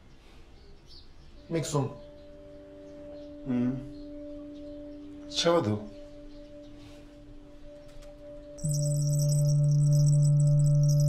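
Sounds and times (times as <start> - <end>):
singing bowl ringing: 8.6 - 11.0.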